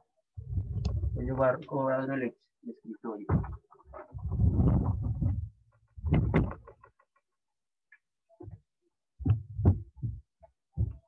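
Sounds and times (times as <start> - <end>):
laptop handling thumps and knocks: 6.0 - 6.8.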